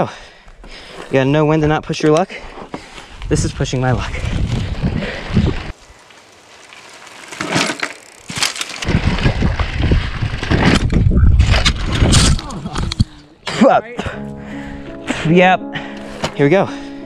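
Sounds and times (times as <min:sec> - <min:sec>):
bike rattling: 0:02.5 - 0:13.3
tyres rolling over dirt: 0:03.6 - 0:13.0
bike crash: 0:04.3 - 0:12.9.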